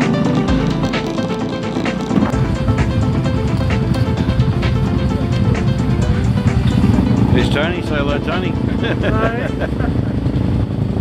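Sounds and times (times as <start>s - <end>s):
background music with beat: 0.0s - 9.8s
motorbike running: 0.0s - 11.0s
people's voices: 7.3s - 9.7s.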